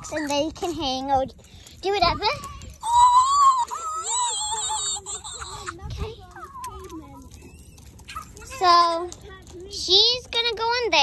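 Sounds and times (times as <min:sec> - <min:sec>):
high-pitched squealing voice: 0:02.8 - 0:06.0.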